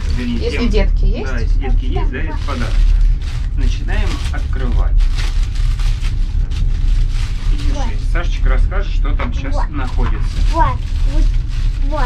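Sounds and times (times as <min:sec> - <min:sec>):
train rumbling: 0:00.0 - 0:12.0
plastic packaging crinkling and tearing: 0:02.1 - 0:08.1, 0:09.8 - 0:12.0.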